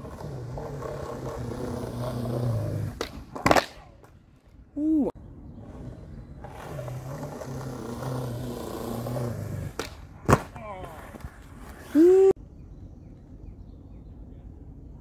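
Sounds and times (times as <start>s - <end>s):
skateboard wheels rolling on concrete: 0.0s - 12.3s
skateboard landing slap: 2.9s - 4.2s, 9.7s - 11.3s
skateboard tail pop: 3.0s - 3.8s, 9.7s - 10.5s.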